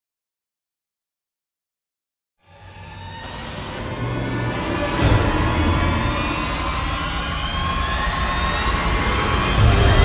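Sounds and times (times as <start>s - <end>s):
low rumble drone: 2.6s - 10.0s.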